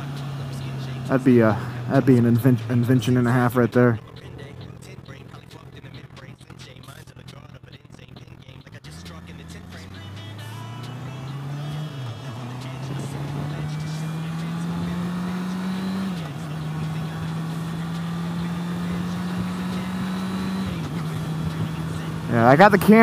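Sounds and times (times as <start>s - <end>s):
motorcycle engine accelerating: 0.0s - 23.0s.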